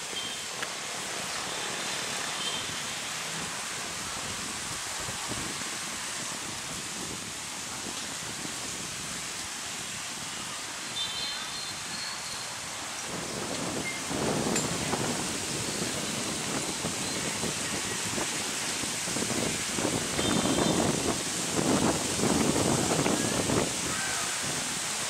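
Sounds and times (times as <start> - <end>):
sea surf: 0.0 - 25.0
wind: 0.0 - 25.0.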